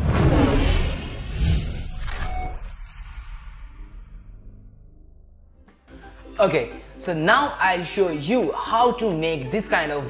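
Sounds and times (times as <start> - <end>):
cinematic low rumble: 0.0 - 5.8.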